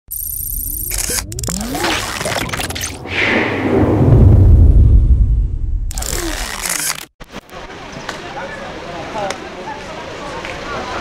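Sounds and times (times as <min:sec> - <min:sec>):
sharp electronic clicks: 0:00.1 - 0:02.9, 0:05.9 - 0:07.1
high warbling tone: 0:00.1 - 0:06.6
rising electronic glides: 0:00.7 - 0:06.7
low synthesized rumble: 0:02.5 - 0:06.0.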